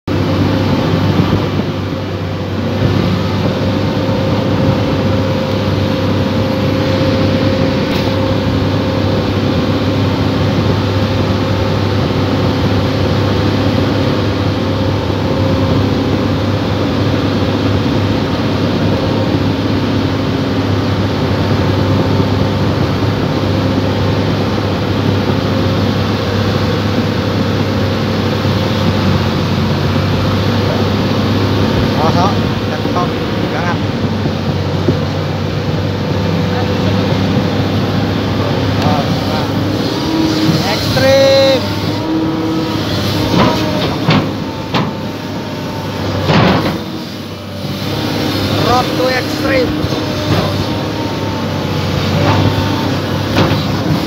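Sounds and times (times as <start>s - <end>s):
excavator diesel engine running: 0.1s - 54.0s.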